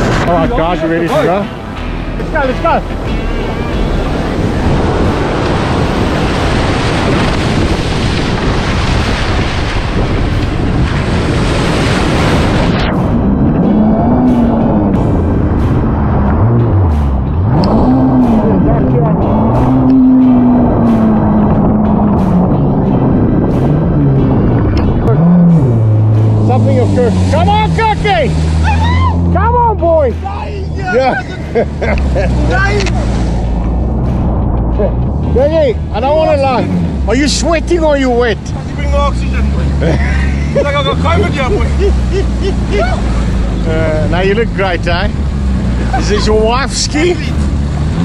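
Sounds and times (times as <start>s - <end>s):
surf and spray rushing: 0.0s - 48.0s
jet ski engine revving: 13.4s - 29.7s, 35.3s - 48.0s.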